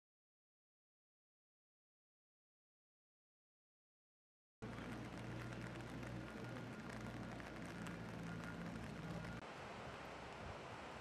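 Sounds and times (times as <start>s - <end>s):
low machinery hum: 4.6s - 10.2s.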